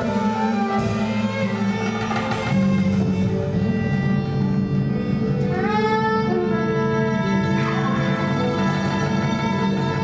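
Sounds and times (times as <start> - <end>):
live band music: 0.0 - 10.0
low drone: 0.0 - 10.0.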